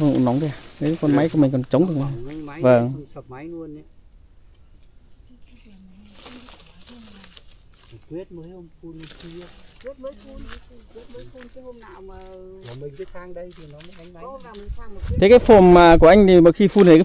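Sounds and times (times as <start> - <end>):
people talking quietly: 4.7 - 17.0.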